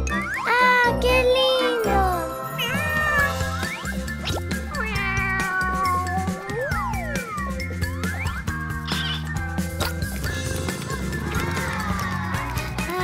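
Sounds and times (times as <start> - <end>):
cheerful background music: 0.0 - 13.0
toy kitten meowing: 2.6 - 3.6, 4.7 - 6.6.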